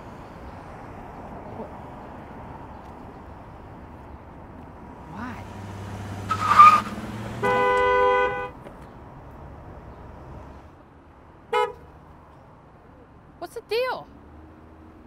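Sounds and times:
car horn honk: 0:06.3 - 0:08.6, 0:11.5 - 0:11.8.

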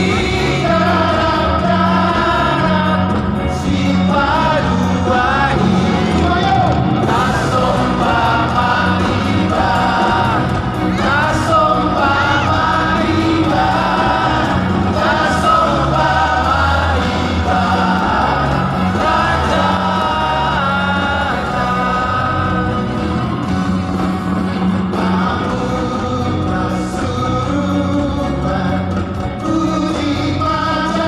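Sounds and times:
men singing together: 0:00.0 - 0:23.7, 0:24.4 - 0:31.0
band playing: 0:00.0 - 0:31.0
steady bass line: 0:00.0 - 0:31.0.

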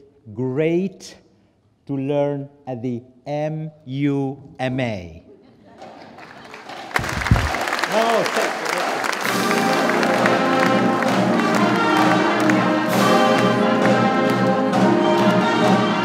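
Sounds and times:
audience applause: 0:05.8 - 0:16.0
orchestral music with brass: 0:09.1 - 0:16.0.

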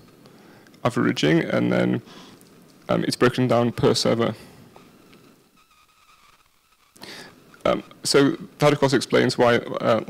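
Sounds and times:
faint high-pitched tone: 0:02.9 - 0:09.8.

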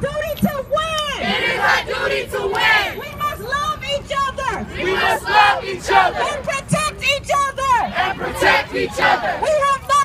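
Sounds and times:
crowd shouting a chant: 0:01.2 - 0:03.0, 0:04.7 - 0:06.5, 0:07.9 - 0:09.6.

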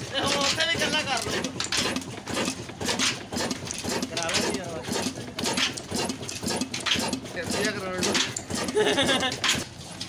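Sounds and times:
engine knocks: 0:00.0 - 0:09.8
oil engine running: 0:00.0 - 0:10.0.

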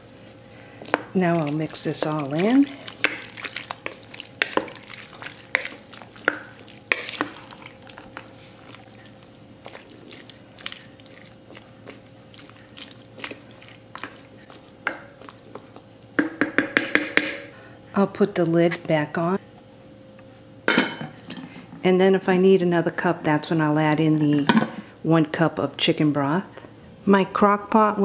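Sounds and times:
soup sloshing: 0:00.0 - 0:15.8
spoon tapping and scraping pot: 0:16.2 - 0:17.4.

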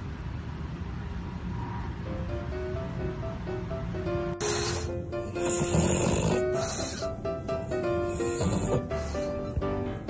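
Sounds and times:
background music with melody: 0:02.1 - 0:10.0
pug breathing noisily: 0:04.4 - 0:09.8.

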